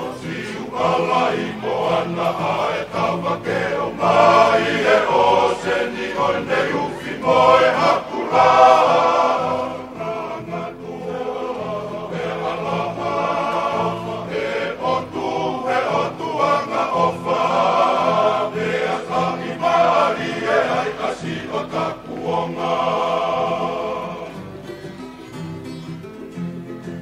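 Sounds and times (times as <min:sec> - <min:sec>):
men singing together: 0:00.0 - 0:24.4.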